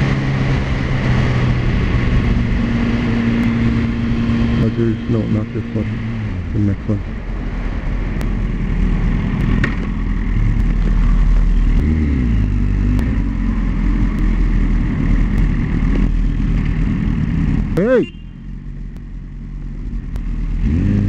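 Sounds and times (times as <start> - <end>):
road and wind noise: 0.0 - 21.0.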